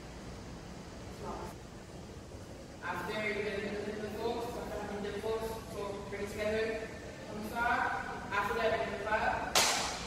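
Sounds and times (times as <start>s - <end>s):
person speaking: 2.8s - 9.6s.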